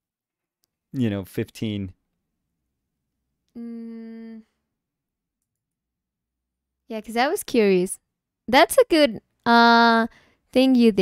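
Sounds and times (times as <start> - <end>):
person humming: 3.6 - 4.4.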